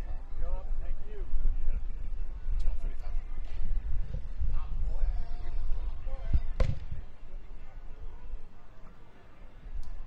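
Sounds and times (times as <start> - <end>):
faint distant voices: 0.0 - 10.0
dull thump: 6.6 - 7.0.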